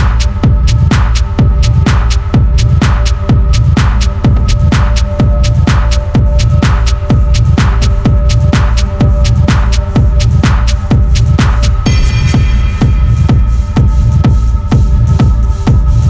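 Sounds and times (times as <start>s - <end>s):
deep droning bass: 0.0s - 16.0s
pounding techno beat: 0.0s - 16.0s.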